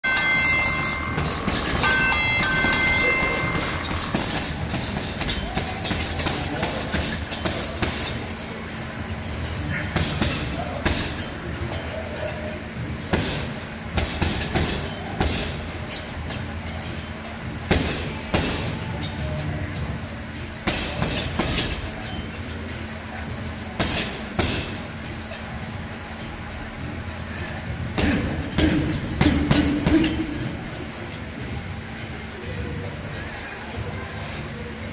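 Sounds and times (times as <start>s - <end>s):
gloved punches on heavy bag: 17.7s - 18.7s, 20.6s - 21.8s.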